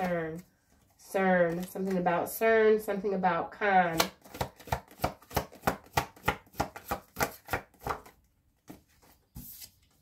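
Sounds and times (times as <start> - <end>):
cards being shuffled: 1.5 - 2.0, 4.0 - 10.0.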